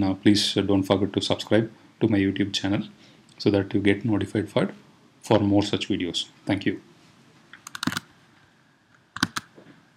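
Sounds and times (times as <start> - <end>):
computer keystrokes: 7.7 - 8.0, 9.2 - 9.5.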